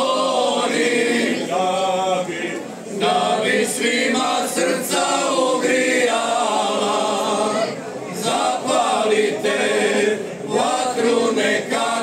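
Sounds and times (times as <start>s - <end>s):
men singing in harmony: 0.0s - 12.0s.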